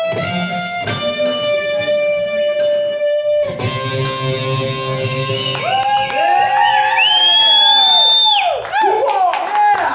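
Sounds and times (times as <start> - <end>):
audience cheering: 5.5 - 9.9
person whooping: 5.5 - 9.9
loud high whistle: 6.9 - 8.6.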